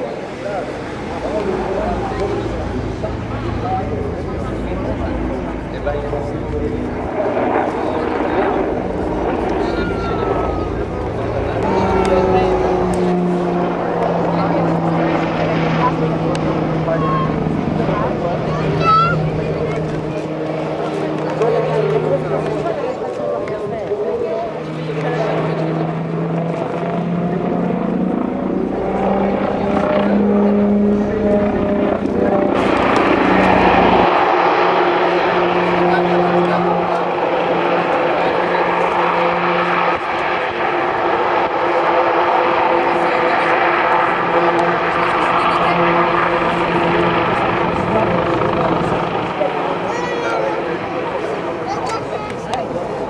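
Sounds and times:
helicopter drone with whining tones: 0.0s - 53.0s.

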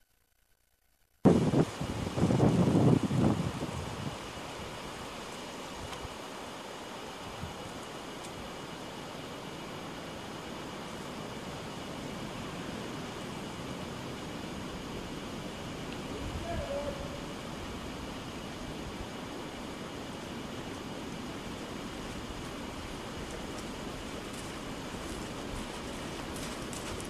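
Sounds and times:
steady outdoor rush of noise: 1.2s - 27.0s
wind buffeting microphone: 1.3s - 4.6s.

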